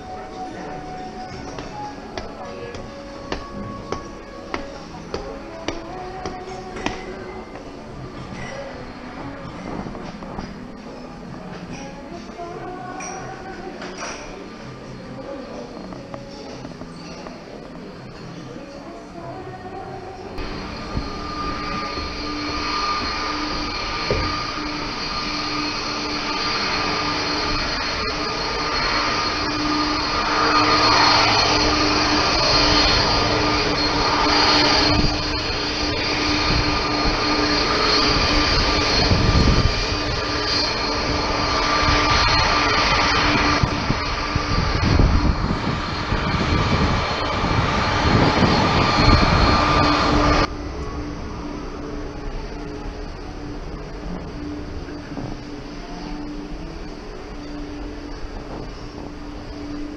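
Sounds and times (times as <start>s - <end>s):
jet engines whining: 0.0s - 59.9s
wind on microphone: 32.0s - 50.6s.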